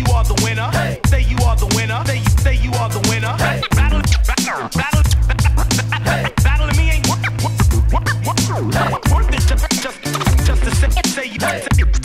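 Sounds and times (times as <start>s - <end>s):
hip hop beat: 0.0s - 12.0s
turntable scratching: 0.0s - 12.0s.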